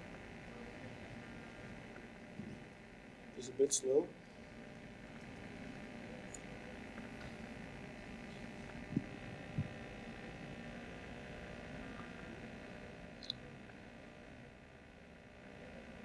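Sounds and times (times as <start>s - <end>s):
microphone hum and hiss: 0.0s - 16.0s
soft low thumps: 8.7s - 9.9s.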